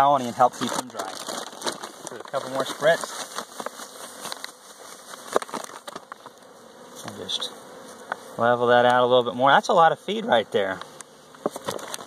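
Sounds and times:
honeybees buzzing: 0:00.0 - 0:12.0
sugar poured from plastic bag: 0:00.4 - 0:03.3.

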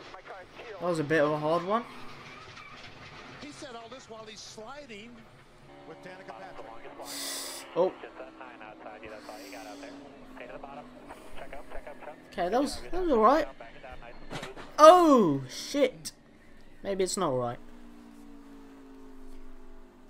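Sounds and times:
faint broadcast voices: 0:00.0 - 0:20.0
race car engine: 0:00.0 - 0:20.0.

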